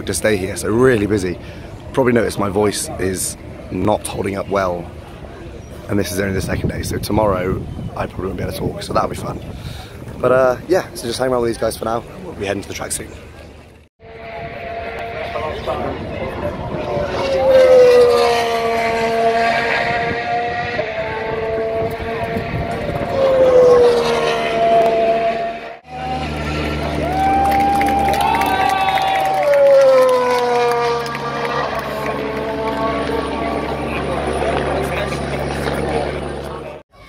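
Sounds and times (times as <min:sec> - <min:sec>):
racing car engines passing: 0:14.0 - 0:36.8.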